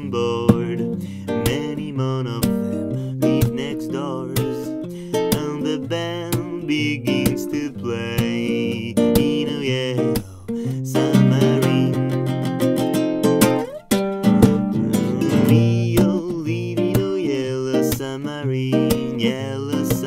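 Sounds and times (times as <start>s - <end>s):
classical guitar strummed: 0.0s - 20.0s.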